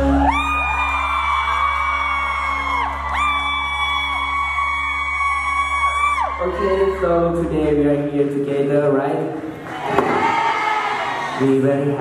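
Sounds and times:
fan screaming: 0.0s - 7.6s.

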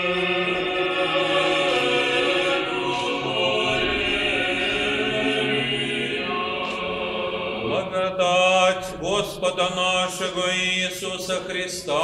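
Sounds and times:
liturgical chant: 0.0s - 12.0s.

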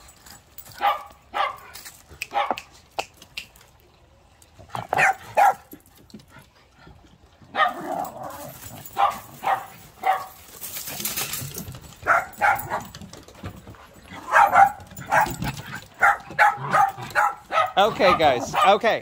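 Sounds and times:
small dogs yapping: 4.7s - 5.7s, 7.5s - 13.0s, 14.1s - 18.8s.

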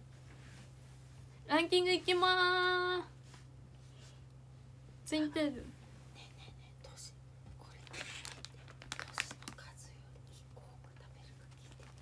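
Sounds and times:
steady low hum: 0.0s - 12.0s
plastic packet crinkling: 7.7s - 9.8s, 11.5s - 12.0s.

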